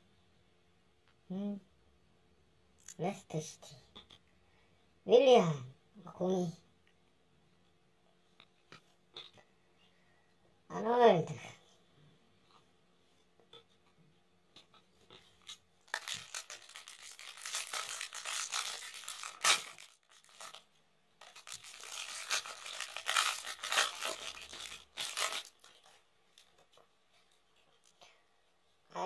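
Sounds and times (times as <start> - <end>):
foil pack tearing and crinkling: 15.4 - 26.6.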